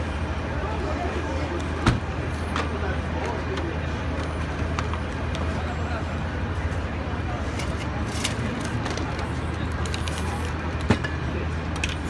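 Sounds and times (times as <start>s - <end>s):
low rumble of traffic: 0.0s - 12.0s
voices in background: 0.2s - 12.0s.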